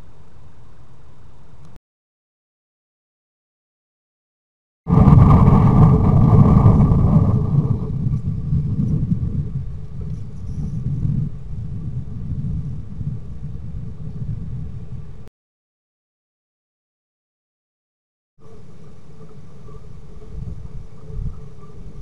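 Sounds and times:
low rumbling noise: 4.9 - 15.3.

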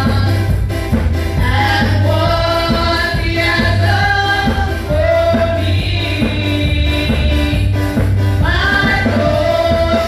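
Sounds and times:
group singing praise song: 0.0 - 0.5, 1.4 - 10.0
bass: 0.0 - 10.0
drumbeat: 0.0 - 10.0.

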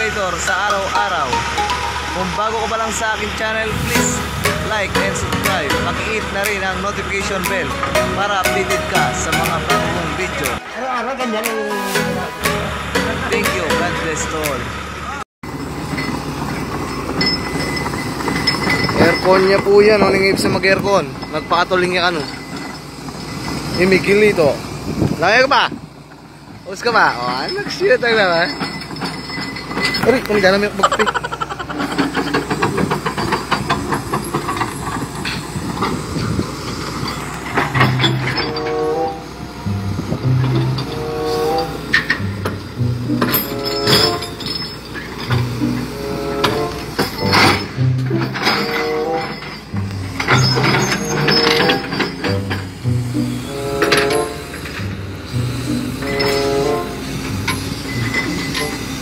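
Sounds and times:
excavator diesel engine clattering: 0.0 - 59.0
music with held notes: 0.7 - 2.5, 4.0 - 6.6, 7.4 - 14.7, 38.6 - 44.4, 52.3 - 59.0
rapid metallic clatter: 26.8 - 38.7, 41.6 - 59.0.

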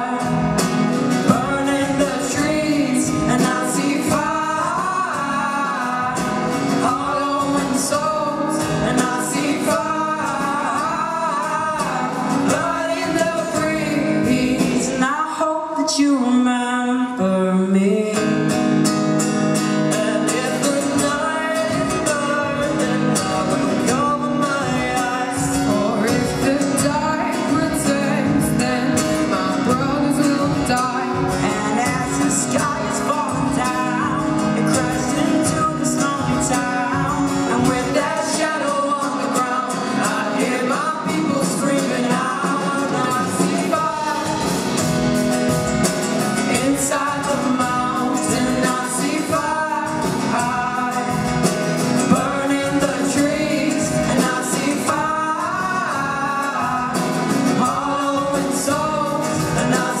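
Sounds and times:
steady drum beat: 0.0 - 15.0, 19.0 - 60.0
strummed acoustic guitars: 0.0 - 60.0
boys singing in harmony: 1.2 - 15.5, 19.8 - 45.1, 46.3 - 60.0.

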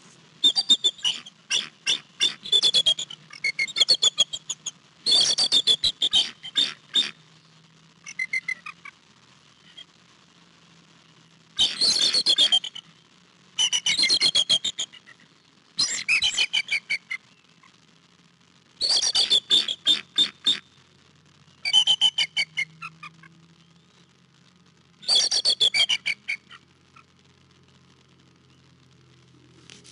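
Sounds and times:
eagle chattering call: 0.4 - 7.3, 8.0 - 9.0, 13.6 - 17.8, 18.8 - 20.8, 21.6 - 24.0, 25.0 - 27.1.

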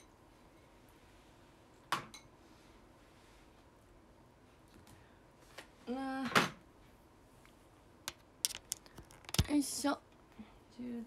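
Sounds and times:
smartphone handling clicks and taps: 8.1 - 9.5.

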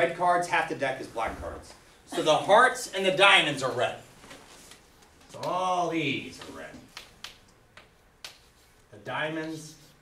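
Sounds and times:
chalk scraping on blackboard: 9.5 - 10.0.

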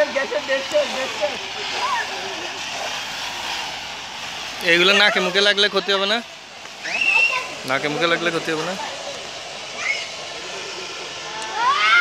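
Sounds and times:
fire extinguishers hissing: 0.0 - 12.0.

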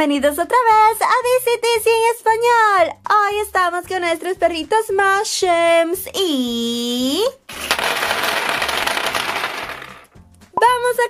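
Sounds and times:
plastic pieces clattering on table: 7.5 - 10.2.

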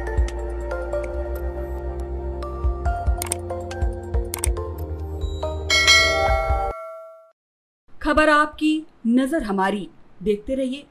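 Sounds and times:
music with low beat: 0.0 - 6.7
bell chime notification: 5.3 - 7.3.

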